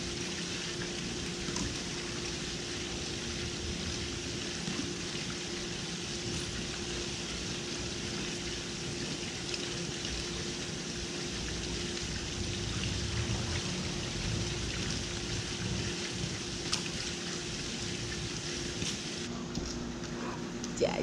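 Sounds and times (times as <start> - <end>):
steady hum: 0.0 - 21.0
water splashing into pool: 0.2 - 19.3.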